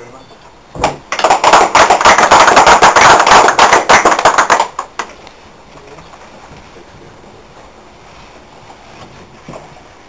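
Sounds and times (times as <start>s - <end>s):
group clapping hands: 0.8s - 5.2s.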